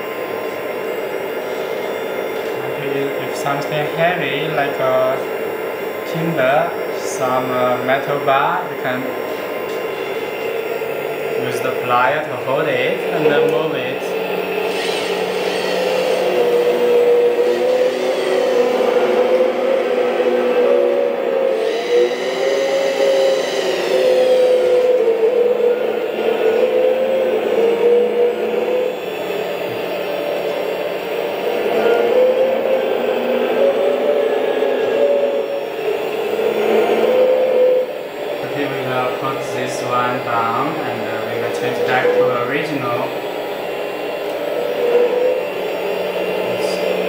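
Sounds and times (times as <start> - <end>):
higher whine: 0.0 - 47.0
hydraulic pump whine: 0.0 - 47.0.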